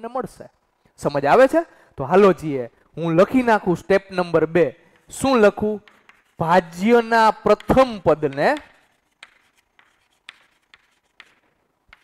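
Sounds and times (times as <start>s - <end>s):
chalk tapping and scratching: 4.9s - 12.0s.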